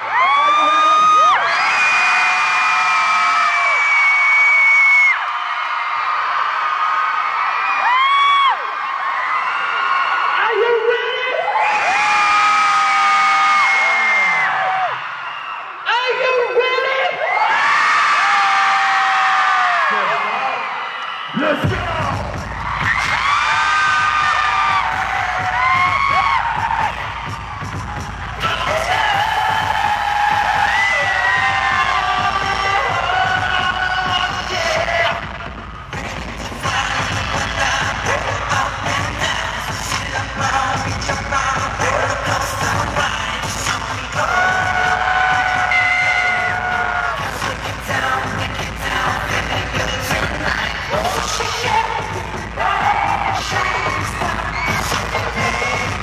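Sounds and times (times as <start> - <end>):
dance pop music with singing: 0.0 - 5.2, 7.7 - 56.0
audience cheering: 0.0 - 36.0, 36.6 - 48.2, 48.9 - 56.0.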